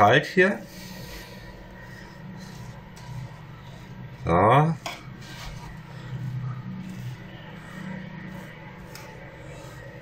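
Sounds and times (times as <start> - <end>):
low steady hum: 0.0 - 10.0
spatula scraping baking tray: 1.9 - 10.0.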